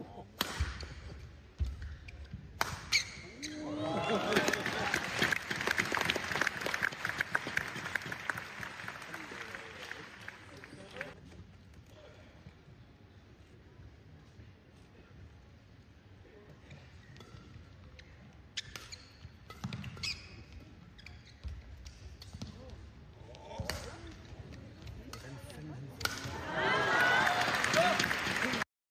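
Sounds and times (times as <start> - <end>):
shoes squeaking on court: 1.6 - 3.6, 18.0 - 22.6
racket striking shuttlecock: 2.6 - 3.2
crowd applauding: 4.0 - 11.2, 26.4 - 28.7.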